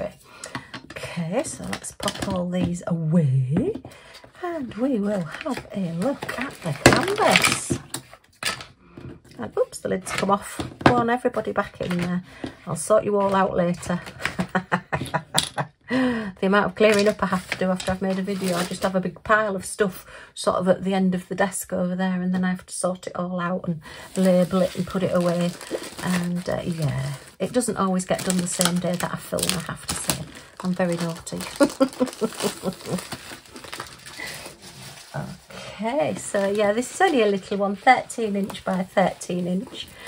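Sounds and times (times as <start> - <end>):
plastic wrapping crinkling: 4.1 - 8.6, 23.9 - 40.0.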